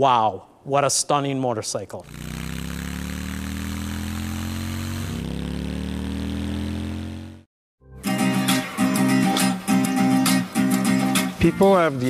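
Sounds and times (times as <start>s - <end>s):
motorcycle engine accelerating: 2.0s - 7.5s.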